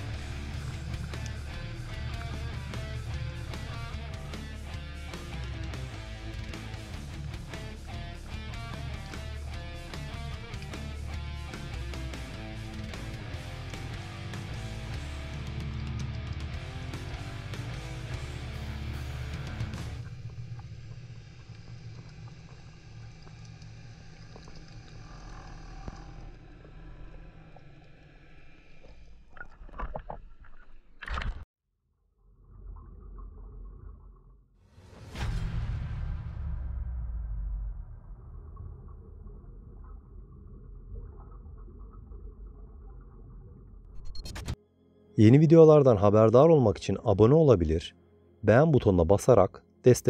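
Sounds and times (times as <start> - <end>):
low underwater rumble: 0.0 - 4.1, 36.6 - 44.1
underwater low rumble: 0.0 - 4.3, 18.6 - 31.0, 32.2 - 34.5, 35.9 - 44.3
water splashing and sloshing: 19.8 - 31.5.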